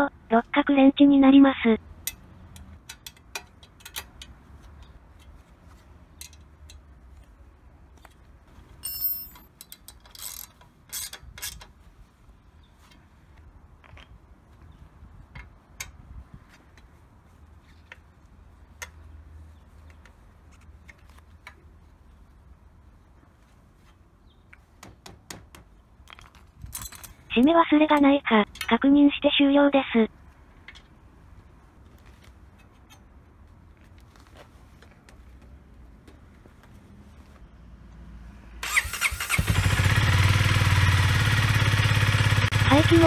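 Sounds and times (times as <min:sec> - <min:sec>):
ratchet clicking on metal: 0:09.0 - 0:11.7.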